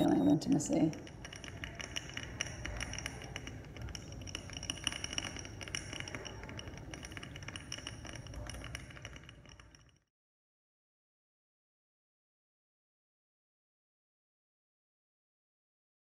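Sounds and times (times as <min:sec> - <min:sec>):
faint high ringing: 0:00.0 - 0:09.9
small clinking clicks: 0:00.0 - 0:10.1.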